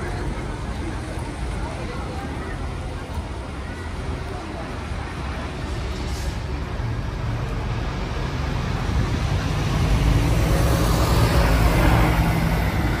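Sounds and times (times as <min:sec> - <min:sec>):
motor vehicle rumble: 0:00.0 - 0:13.0.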